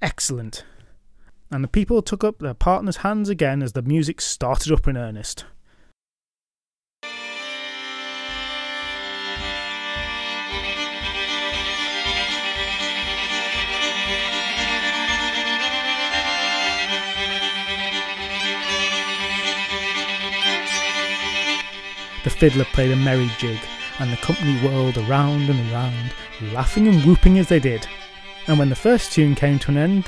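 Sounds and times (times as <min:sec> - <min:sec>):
fiddle playing a jig: 0:07.0 - 0:30.0
steady low beat: 0:07.8 - 0:29.7.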